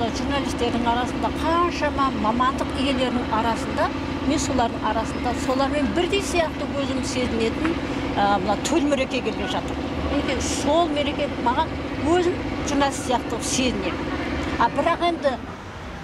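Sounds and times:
woman talking: 0.0 - 15.5
low background hum: 0.0 - 15.7.

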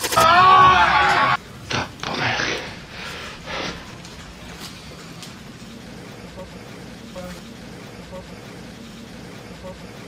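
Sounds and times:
room noise hum: 0.0 - 10.0.

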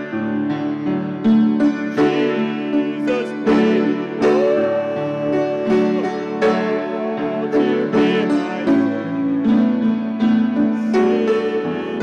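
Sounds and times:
piano: 0.0 - 12.0
accordion: 1.3 - 12.0.

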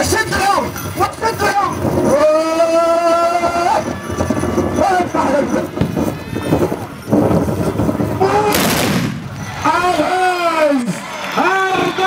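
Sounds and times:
horses galloping: 0.0 - 12.0
voices calling out: 0.0 - 12.0.

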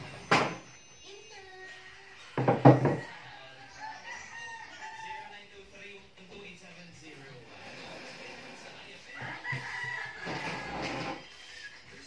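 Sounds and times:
rooster crowing: 2.8 - 5.4, 9.1 - 10.8.

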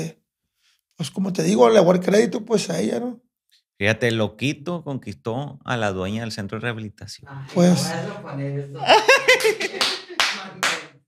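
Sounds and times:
man laughing: 8.9 - 10.2
hand claps: 9.4 - 11.0.

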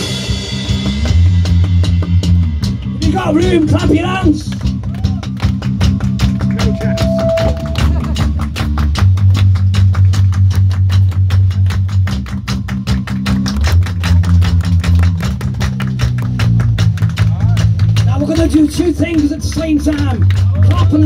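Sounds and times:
loud fast drum beat: 0.0 - 21.0
rock band playing: 0.0 - 21.0.

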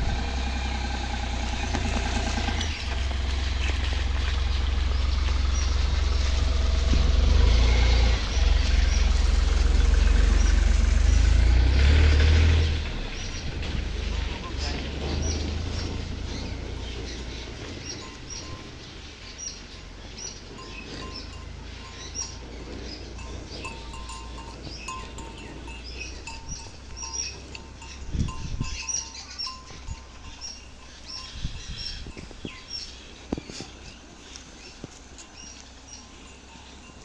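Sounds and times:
low rumble: 0.0 - 37.0
small birds chirping: 0.4 - 11.7, 12.3 - 37.0.

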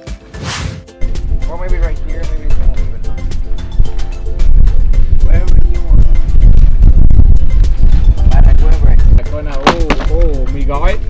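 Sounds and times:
music with steady beat: 0.0 - 11.0
wind buffeting microphone: 1.0 - 11.0.

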